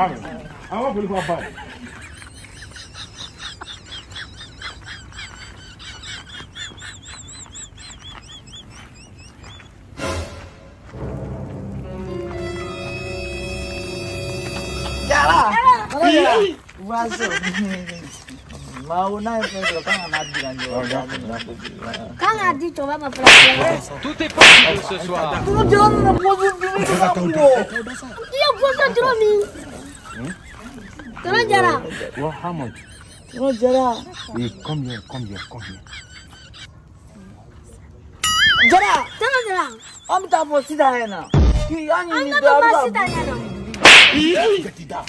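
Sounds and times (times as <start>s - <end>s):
bird chirping: 2.1s - 9.9s
sharp cracks: 23.2s - 25.0s, 43.8s - 44.4s.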